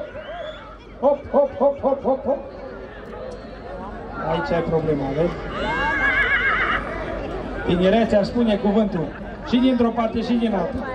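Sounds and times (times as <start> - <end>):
horse whinnying: 5.5 - 7.0.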